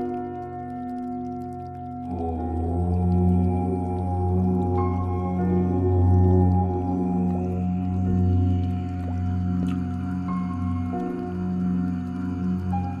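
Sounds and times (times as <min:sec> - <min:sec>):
low steady drone: 0:00.0 - 0:13.0.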